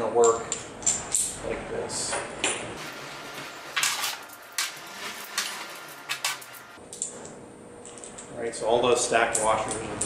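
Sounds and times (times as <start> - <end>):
metal washers clinking: 3.0 - 6.8.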